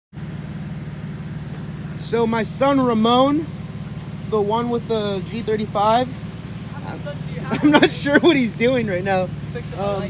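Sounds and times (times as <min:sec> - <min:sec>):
car engine idling: 0:00.1 - 0:10.0.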